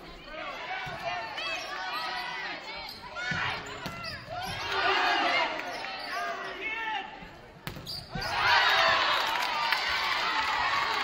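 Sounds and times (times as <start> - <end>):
many voices shouting: 4.3 - 5.7, 8.2 - 11.0
volleyball being hit: 7.6 - 8.3.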